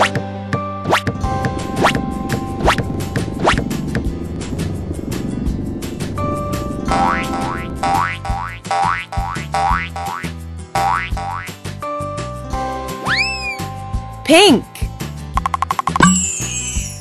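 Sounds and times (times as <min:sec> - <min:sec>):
background music: 0:00.0 - 0:17.0
cartoon boing sound effects: 0:06.9 - 0:11.5.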